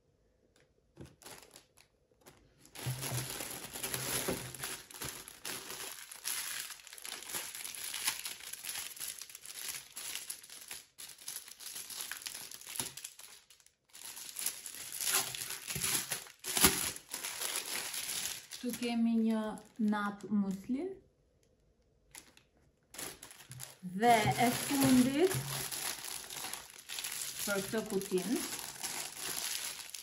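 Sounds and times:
plastic packaging crinkling: 1.0s - 20.7s, 22.1s - 30.0s.

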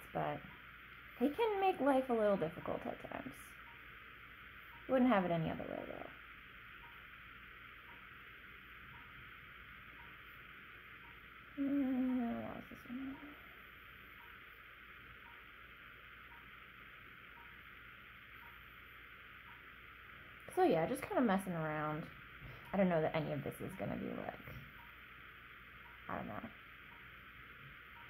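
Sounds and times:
background hiss: 0.0s - 28.0s
woman humming: 11.6s - 13.5s.

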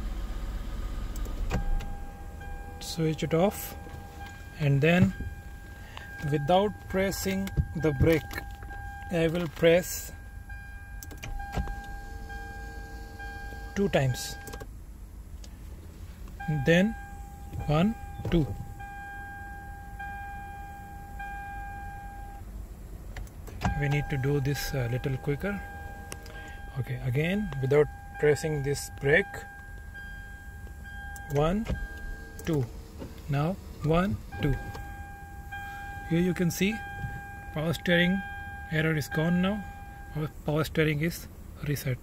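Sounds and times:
car engine idling: 0.0s - 42.0s
dashboard warning chime: 1.2s - 14.7s, 16.4s - 22.5s, 23.5s - 41.0s
steady high tone: 1.6s - 14.6s.

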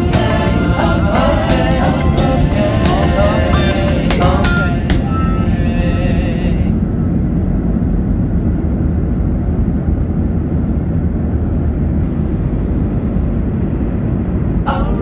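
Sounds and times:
music: 0.0s - 6.7s
airliner cabin rumble: 0.0s - 15.0s.

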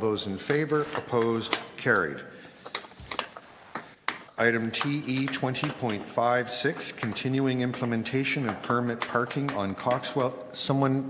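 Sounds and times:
keyboard typing: 2.6s - 10.4s.

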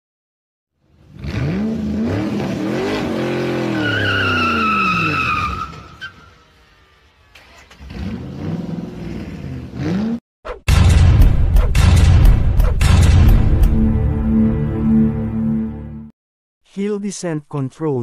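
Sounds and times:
car engine revving: 0.9s - 10.2s
tyre squeal: 3.5s - 6.5s.

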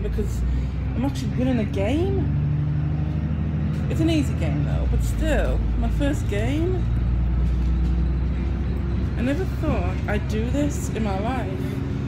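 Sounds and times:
bus engine rumble: 0.0s - 12.0s.

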